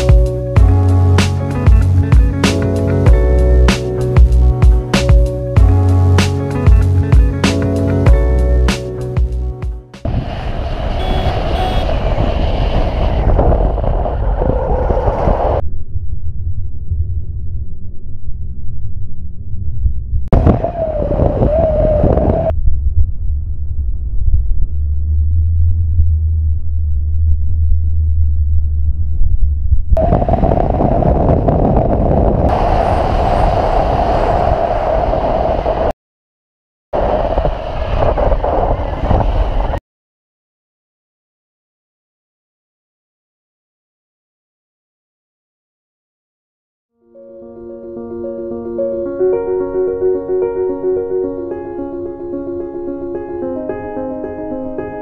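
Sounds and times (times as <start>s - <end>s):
wind noise: 10.0s - 25.2s, 27.0s - 35.9s, 37.0s - 39.8s.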